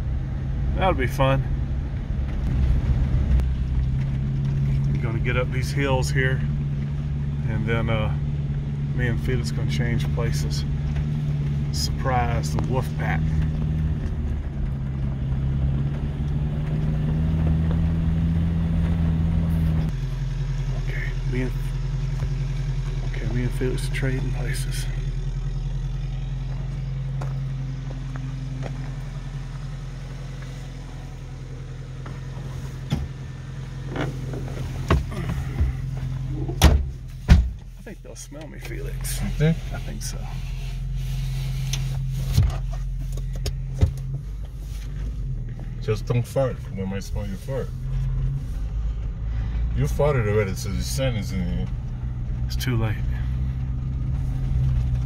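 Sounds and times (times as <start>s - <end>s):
vehicle engine running at low revs: 0.0s - 55.0s
sharp knocks and thumps: 33.9s - 37.7s.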